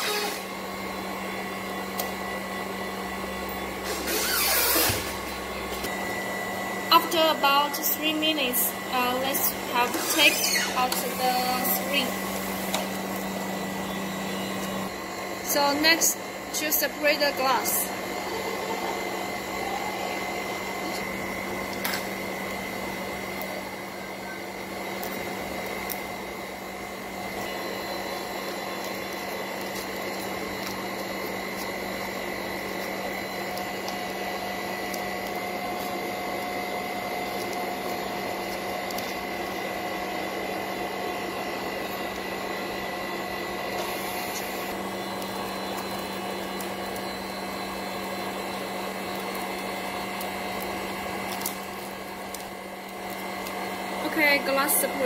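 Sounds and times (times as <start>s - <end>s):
steady machine hum: 0.0s - 55.0s.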